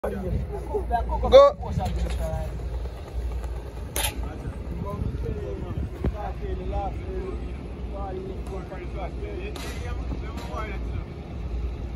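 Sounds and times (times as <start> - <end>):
wind rumbling on microphone: 0.0 - 8.3.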